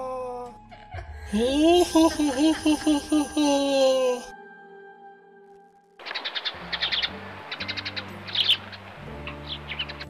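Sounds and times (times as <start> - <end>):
background music low notes: 0.0 - 10.0
songbirds chirping: 6.0 - 10.0.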